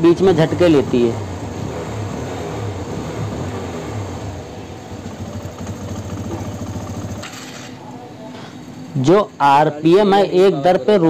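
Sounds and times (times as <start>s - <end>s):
motorcycle engine idling unevenly: 0.0s - 9.8s.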